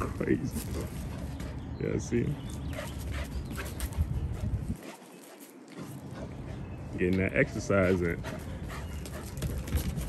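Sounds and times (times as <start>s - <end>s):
dog breathing noisily: 2.7s - 7.0s, 7.8s - 9.7s
dog scuffling: 8.7s - 10.0s.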